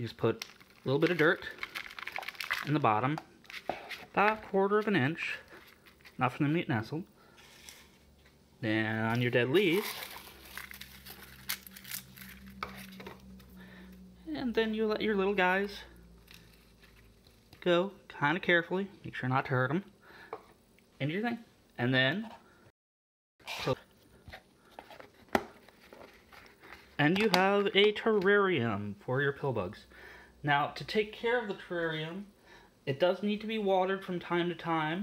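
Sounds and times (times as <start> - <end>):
dry leaves crinkling: 9.5 - 13.1.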